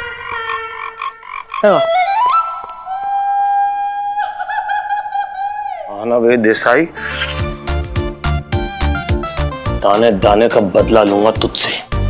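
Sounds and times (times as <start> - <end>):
croaky pulsing tone: 0.0 - 2.8.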